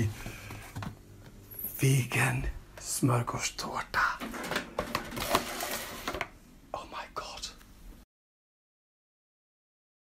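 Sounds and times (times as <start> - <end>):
cardboard box rustling: 4.8 - 6.2.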